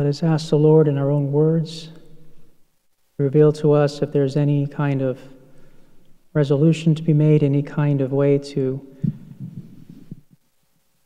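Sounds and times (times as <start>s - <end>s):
voice echoing in a church: 0.0s - 2.6s, 3.2s - 10.2s.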